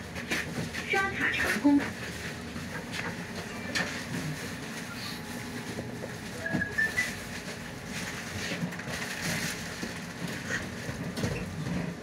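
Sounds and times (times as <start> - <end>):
bus engine hum: 0.0 - 12.0.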